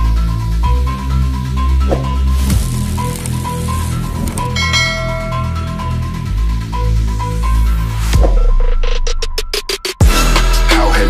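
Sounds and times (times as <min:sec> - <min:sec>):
bell-like notification ding: 0:04.6 - 0:06.2.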